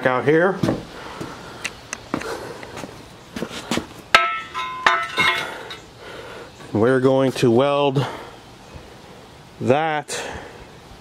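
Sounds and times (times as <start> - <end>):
footsteps: 0.6 - 5.8
sharp metal clank ringing: 4.1 - 5.8.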